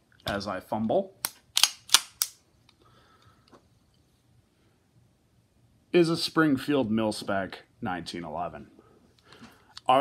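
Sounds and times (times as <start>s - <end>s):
sharp pistol clicks: 1.2s - 2.4s.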